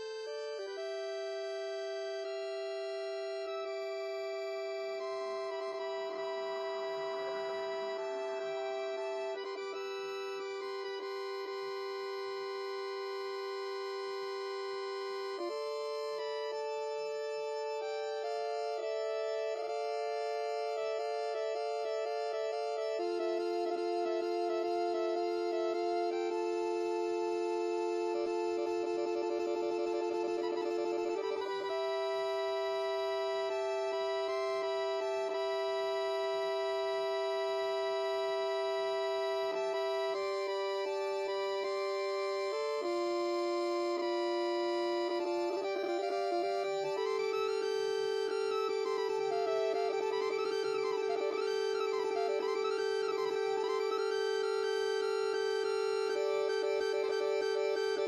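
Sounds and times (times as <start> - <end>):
sustained synthesizer organ notes: 15.2 - 44.1.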